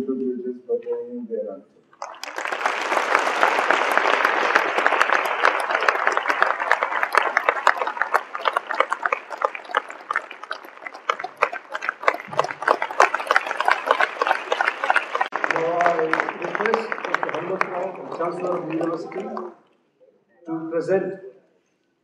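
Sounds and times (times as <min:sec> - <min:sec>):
audience applauding: 0:02.0 - 0:19.6.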